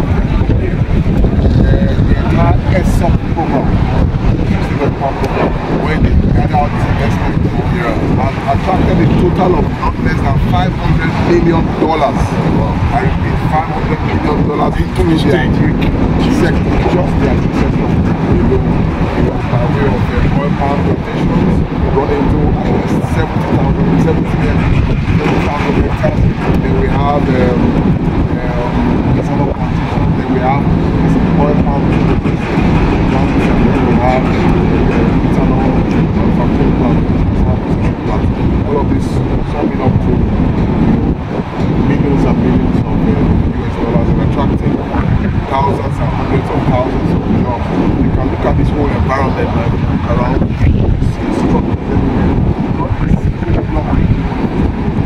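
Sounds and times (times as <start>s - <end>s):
man talking: 0.0s - 54.4s
constant hum: 0.0s - 55.0s
loud low rumble: 0.0s - 55.0s.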